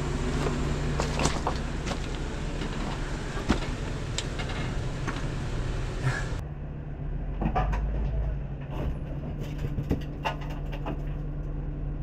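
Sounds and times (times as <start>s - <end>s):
car engine running low: 0.0s - 12.0s.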